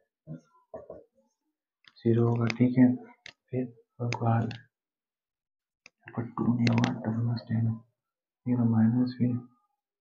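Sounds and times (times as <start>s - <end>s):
man speaking: 1.9s - 4.7s, 6.0s - 9.6s.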